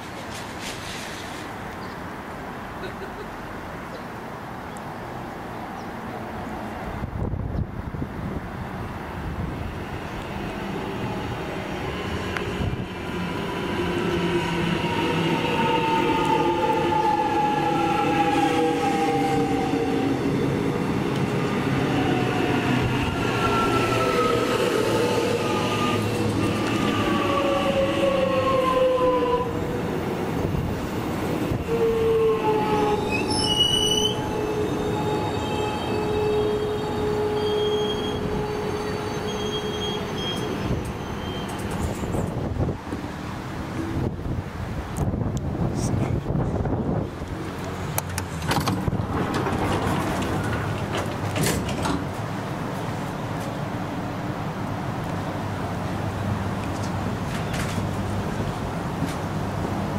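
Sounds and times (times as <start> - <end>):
wheel squeal: 33.1 - 42.3.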